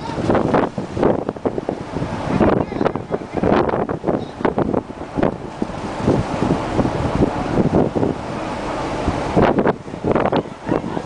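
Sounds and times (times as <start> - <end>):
sea waves washing: 0.0 - 11.0
wind buffeting microphone: 0.0 - 11.0.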